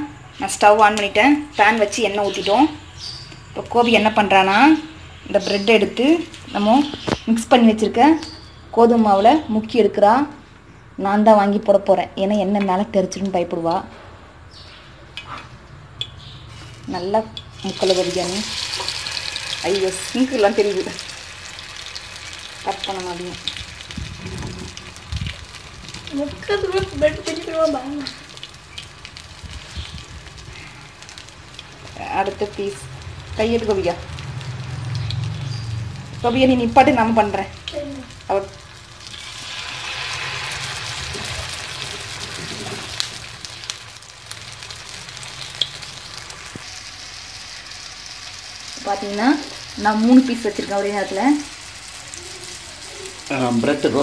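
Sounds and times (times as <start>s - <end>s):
bread sizzling in hot oil: 16.4s - 54.0s.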